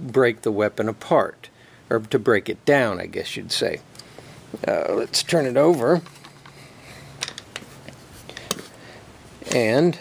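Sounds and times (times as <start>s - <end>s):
rifle handling clicks and knocks: 7.2s - 8.7s.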